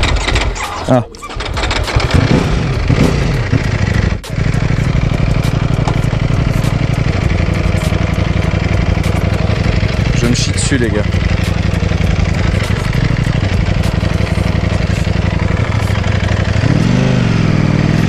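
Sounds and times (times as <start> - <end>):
motorcycle engine pulling away: 0.0 - 18.0.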